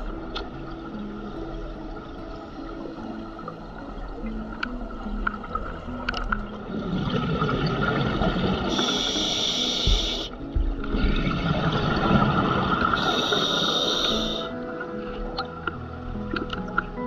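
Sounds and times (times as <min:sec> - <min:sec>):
diver breathing through regulator: 0:08.7 - 0:10.4, 0:13.0 - 0:14.6.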